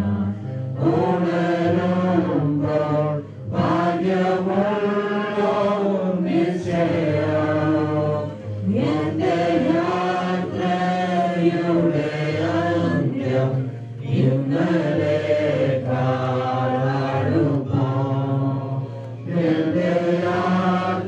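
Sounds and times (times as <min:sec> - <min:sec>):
group singing a slow hymn: 0:00.0 - 0:21.0.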